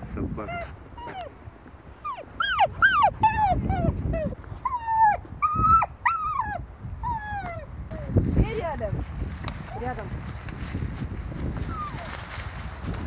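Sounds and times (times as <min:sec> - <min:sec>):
dog whining: 0:00.4 - 0:08.1, 0:11.7 - 0:12.1.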